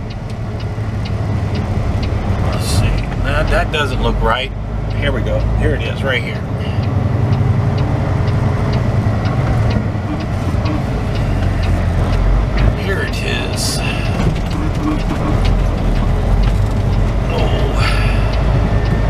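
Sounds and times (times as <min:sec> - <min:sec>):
diesel truck engine rumble: 0:00.0 - 0:19.0
light regular ticking: 0:00.0 - 0:19.0.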